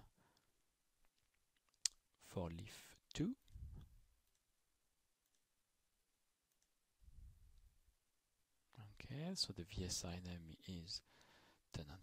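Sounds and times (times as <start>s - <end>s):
man speaking: 2.2s - 3.4s.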